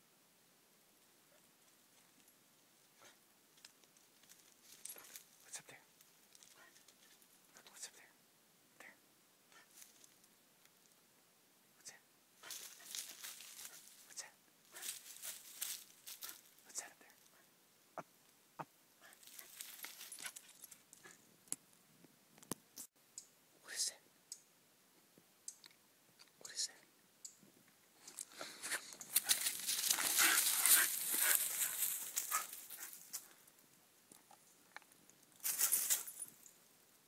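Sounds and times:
person whispering: 0:05.0 - 0:06.9, 0:07.5 - 0:08.2, 0:08.8 - 0:09.8, 0:11.8 - 0:15.1, 0:16.2 - 0:17.5, 0:23.6 - 0:24.1, 0:26.3 - 0:26.9.

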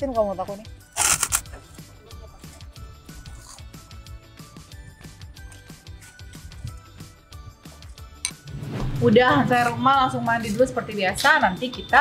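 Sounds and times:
background music with low beat: 0:00.0 - 0:12.0
cracker crunch: 0:00.9 - 0:01.8, 0:02.4 - 0:03.9, 0:05.3 - 0:06.9.

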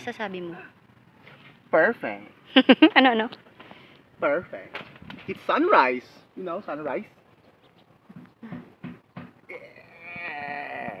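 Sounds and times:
man whooping: 0:09.5 - 0:11.0.

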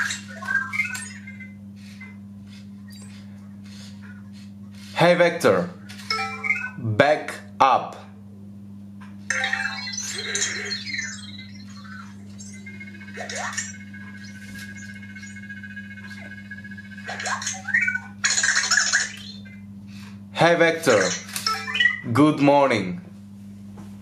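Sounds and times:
robot electronic chirps: 0:00.0 - 0:03.9, 0:06.1 - 0:06.8, 0:09.3 - 0:19.7, 0:20.9 - 0:22.3.

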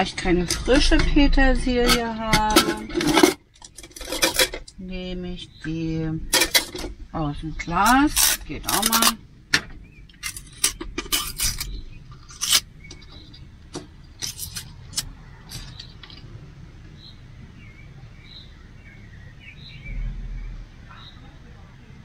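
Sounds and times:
steady low hum: 0:00.0 - 0:22.0
faint bird chirps: 0:16.9 - 0:21.7.

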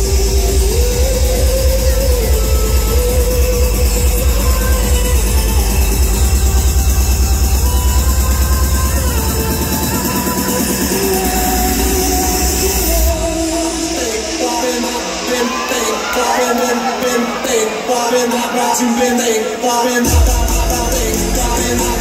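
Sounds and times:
pounding kick drum: 0:20.1 - 0:22.0.

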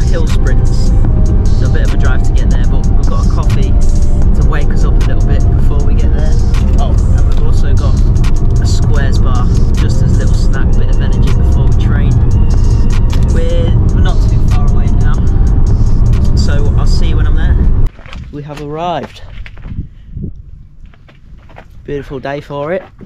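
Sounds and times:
person speaking: 0:00.0 - 0:15.6
music: 0:00.0 - 0:17.9
road and engine rumble: 0:00.0 - 0:23.0.

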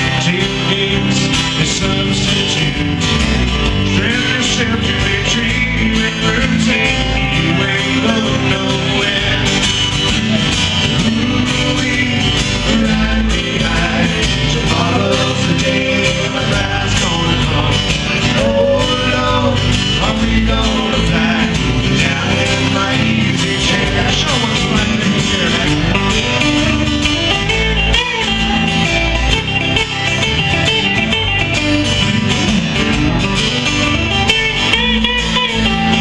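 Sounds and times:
acoustic guitar strumming: 0:00.0 - 0:36.0
electric bass: 0:00.0 - 0:36.0
electric guitar bending notes: 0:00.0 - 0:36.0.

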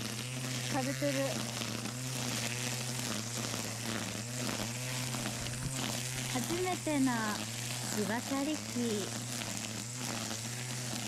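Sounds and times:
string trimmer cutting grass: 0:00.0 - 0:11.0.

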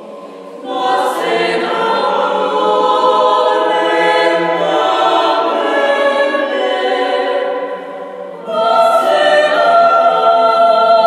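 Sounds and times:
mixed choir singing a cappella: 0:00.0 - 0:11.0.

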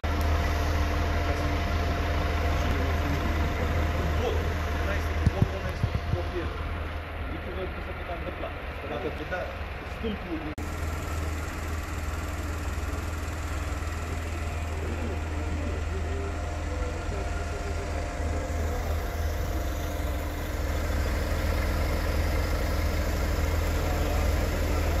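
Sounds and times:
street traffic rumble: 0:00.0 - 0:25.0
vehicle engines idling: 0:00.0 - 0:25.0.

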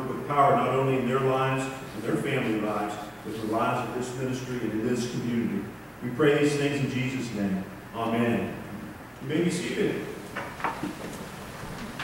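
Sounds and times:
man speaking: 0:00.0 - 0:10.2.

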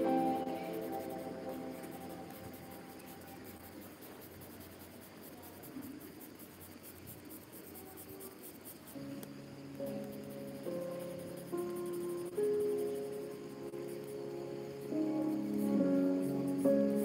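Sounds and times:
soft background music: 0:00.0 - 0:03.8, 0:08.9 - 0:17.0
pencil shading on paper: 0:00.0 - 0:17.0.

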